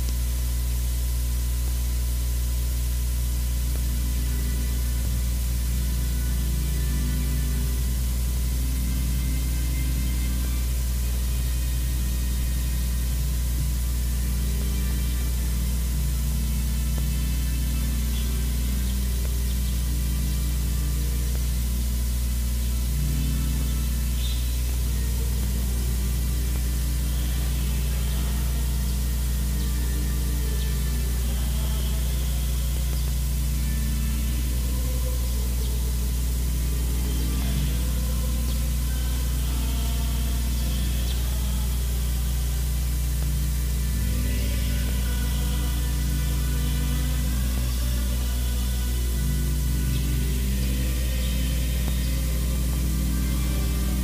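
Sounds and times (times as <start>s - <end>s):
low hum and hiss: 0.0s - 54.0s
quiet instrumental music: 3.5s - 54.0s.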